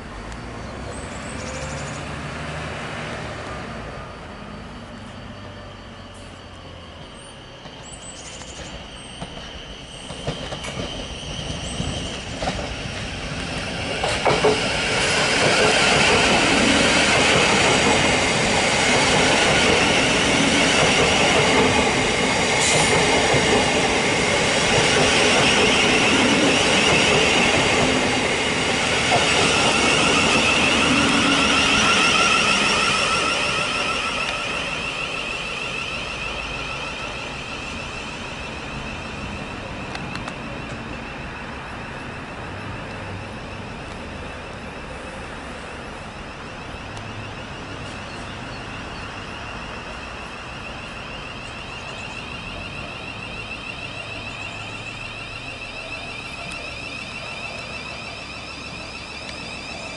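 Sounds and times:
electric train motors whining: 0.0s - 59.9s
wheel and rail noise: 0.0s - 59.9s.

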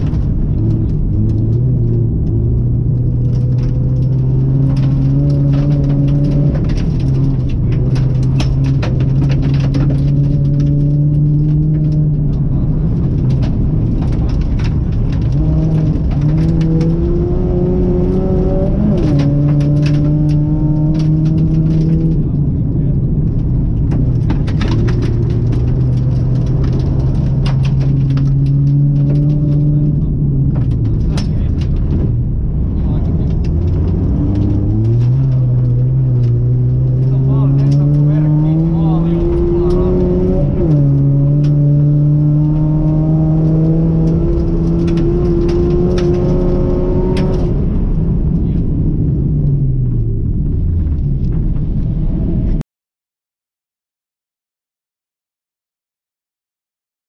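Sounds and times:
car engine revving: 0.0s - 52.6s.

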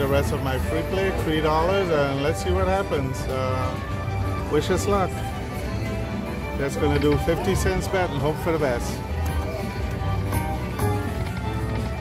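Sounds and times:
electronic slot machine music: 0.0s - 12.0s.

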